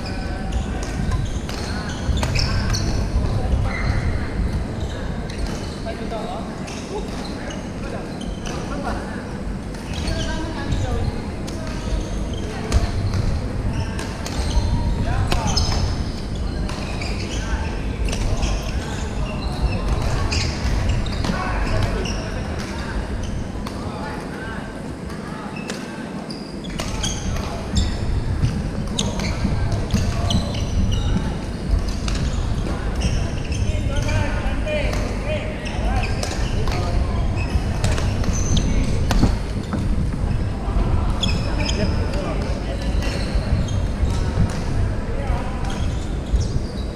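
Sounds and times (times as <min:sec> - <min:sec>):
sneakers squeaking on wooden floor: 0:00.0 - 0:08.8, 0:09.8 - 0:23.6, 0:25.5 - 0:46.9
chatter of many voices: 0:00.0 - 0:46.9.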